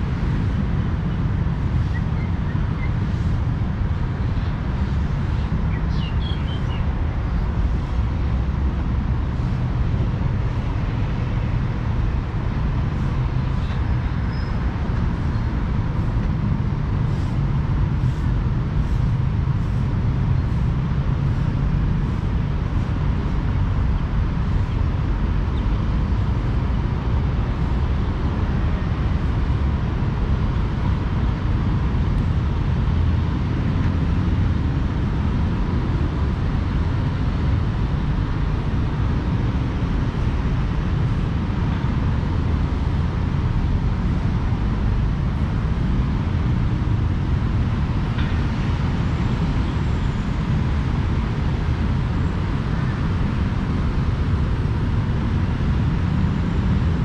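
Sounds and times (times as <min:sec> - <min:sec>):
road traffic rumble: 0:00.0 - 0:57.0.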